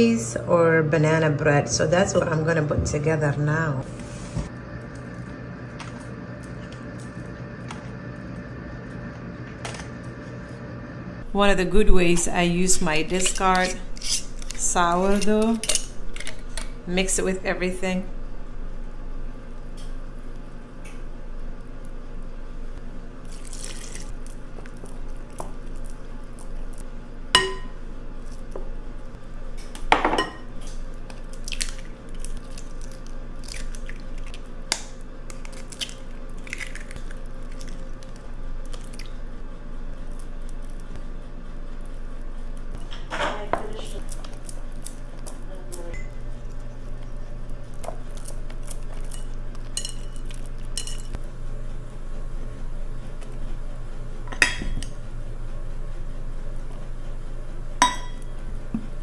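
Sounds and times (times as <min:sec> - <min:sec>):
glass bowl and utensils clinking: 0:49.0 - 0:51.1.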